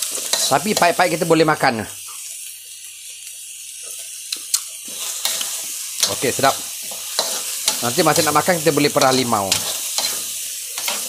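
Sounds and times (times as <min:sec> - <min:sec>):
berries sizzling in a wok: 0:00.0 - 0:11.0.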